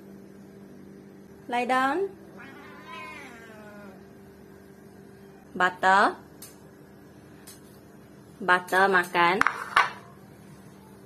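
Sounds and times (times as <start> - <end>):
cat meowing: 2.4 - 4.1.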